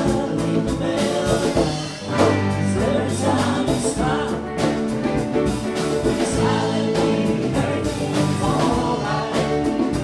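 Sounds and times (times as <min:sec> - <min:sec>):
man singing lead: 0:00.0 - 0:05.3, 0:06.0 - 0:10.0
backing voices: 0:00.0 - 0:10.0
congas: 0:00.0 - 0:10.0
electric bass: 0:00.0 - 0:10.0
electric guitars: 0:00.0 - 0:10.0.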